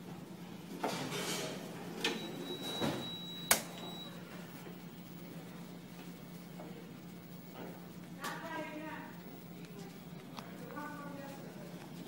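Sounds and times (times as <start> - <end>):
steady low hum: 1.6 - 12.0.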